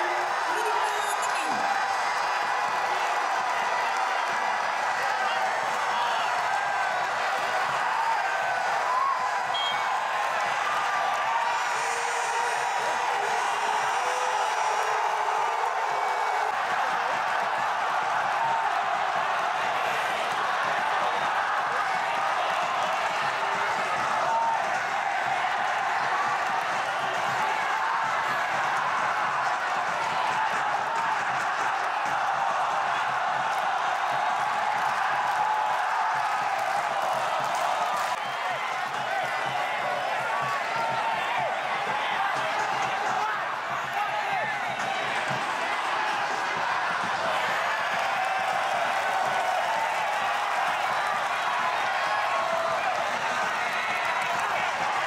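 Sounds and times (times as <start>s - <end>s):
stadium crowd cheering and shouting: 0.0s - 55.0s.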